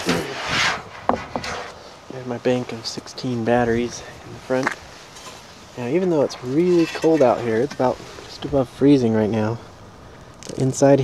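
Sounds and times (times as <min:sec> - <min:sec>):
cover scraping and rubbing: 0:00.0 - 0:01.8.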